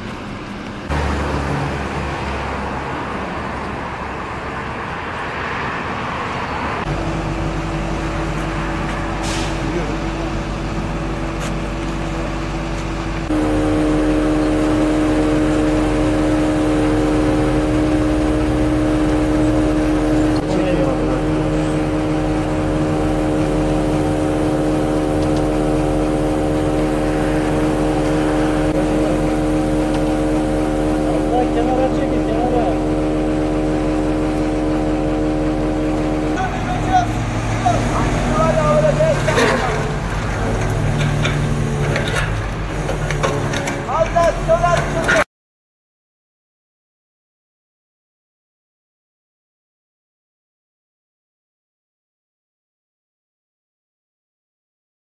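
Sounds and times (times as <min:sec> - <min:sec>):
truck crane engine running: 0:00.0 - 0:45.2.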